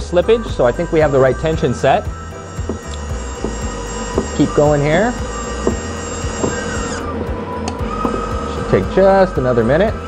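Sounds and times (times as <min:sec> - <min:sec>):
background music: 0:00.0 - 0:10.0
welder wire-feed motor running: 0:00.6 - 0:07.2, 0:07.8 - 0:09.8.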